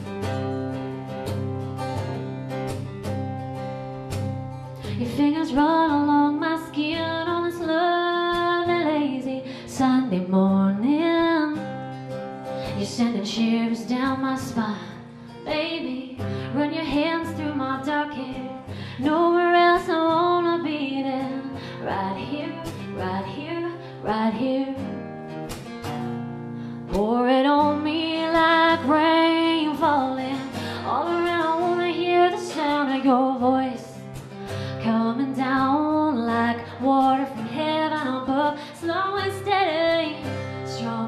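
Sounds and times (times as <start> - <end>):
acoustic guitars strumming: 0.0 - 41.0
woman singing slow song: 4.8 - 25.3, 26.7 - 41.0.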